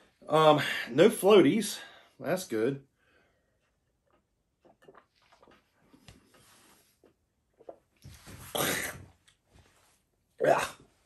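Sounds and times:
mouth and swallowing sounds: 4.0s - 9.1s
man sipping from a glass: 4.6s - 9.0s.

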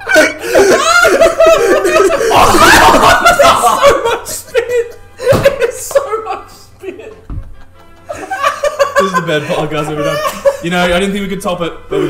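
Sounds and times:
men laughing: 0.0s - 11.1s
faint background music: 0.0s - 12.0s.

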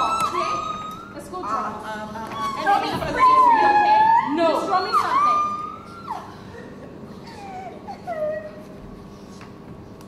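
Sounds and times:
high howl-like wailing cry: 0.0s - 6.4s.

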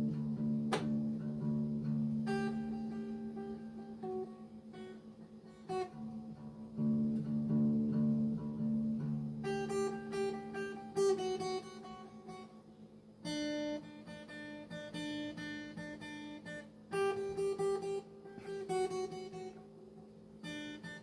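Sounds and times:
acoustic guitar riff: 0.0s - 12.6s, 13.2s - 21.0s.

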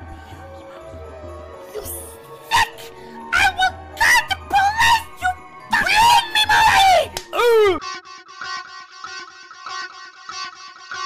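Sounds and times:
loud voice crying out: 1.8s - 7.8s.

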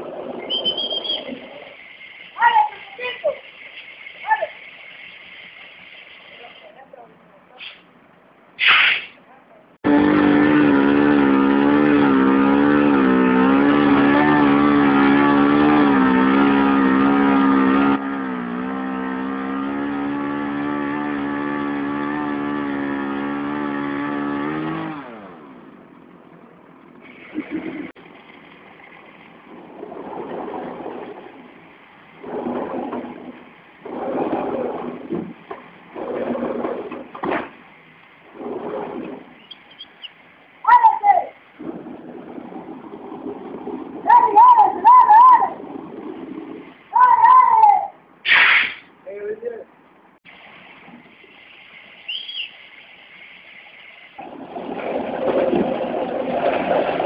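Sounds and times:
truck engine under load: 9.8s - 40.6s, 41.4s - 46.9s, 54.2s - 57.0s.

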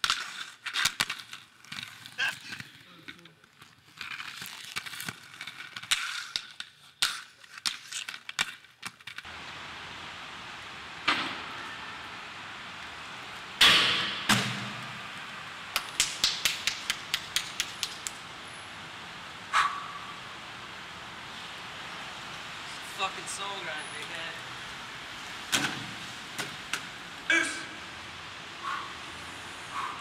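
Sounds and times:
tape hiss: 9.1s - 29.7s
quick run of clicks: 15.8s - 18.2s.

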